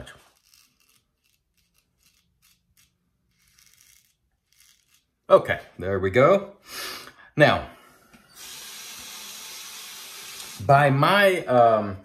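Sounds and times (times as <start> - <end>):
razor scraping stubble: 0.0 - 5.3.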